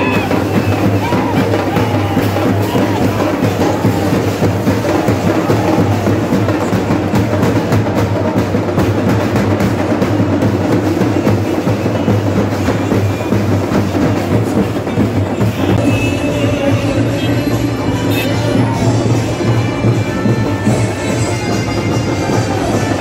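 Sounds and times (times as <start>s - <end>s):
music with fast dense drumming: 0.0s - 23.0s.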